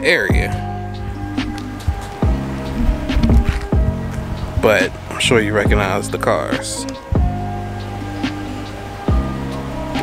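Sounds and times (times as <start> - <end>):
held notes over bass beat: 0.0 - 10.0.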